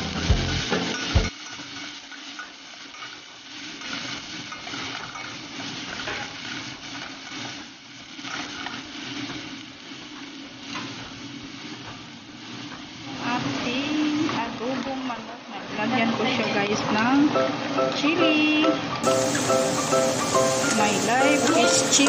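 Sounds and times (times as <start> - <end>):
onion sizzling in hot oil: 0.0 - 22.0.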